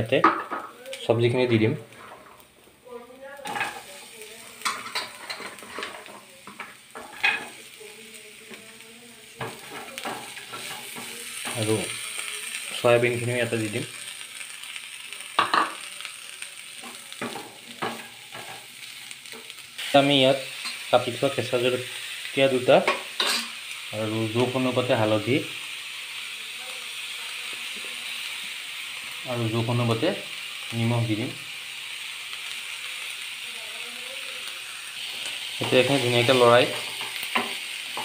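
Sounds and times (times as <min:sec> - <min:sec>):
onions sizzling in oil: 0:00.0 - 0:38.0
spatula scraping a pan: 0:01.9 - 0:02.4, 0:03.5 - 0:07.6.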